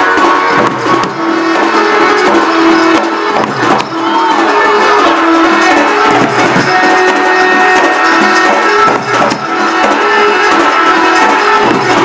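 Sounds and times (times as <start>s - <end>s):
barrel drum beating: 0.1s - 12.0s.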